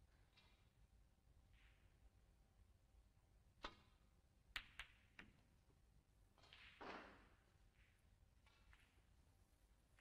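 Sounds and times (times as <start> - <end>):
snooker balls clicking: 3.6 - 5.6, 6.3 - 10.0.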